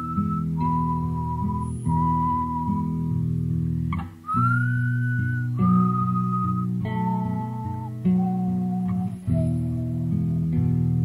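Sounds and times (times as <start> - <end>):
whistled melody: 0.0 - 3.4, 4.2 - 10.6
guitar accompaniment: 0.0 - 11.0.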